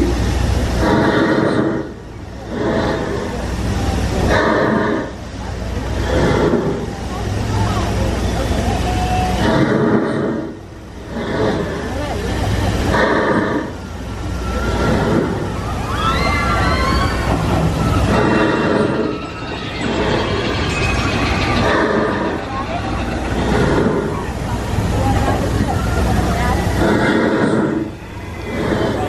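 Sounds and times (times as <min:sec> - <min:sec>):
people's voices: 0:00.0 - 0:29.0
roller coaster rumbling on track: 0:00.0 - 0:29.0.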